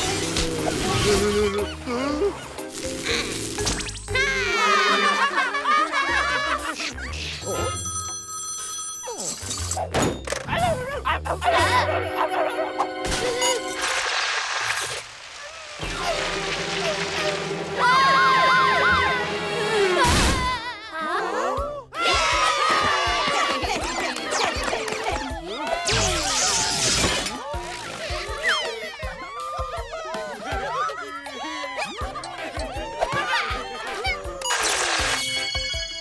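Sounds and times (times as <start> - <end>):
background music: 0.0 - 14.2, 15.8 - 36.0
cartoon telephone ringing: 7.5 - 9.6.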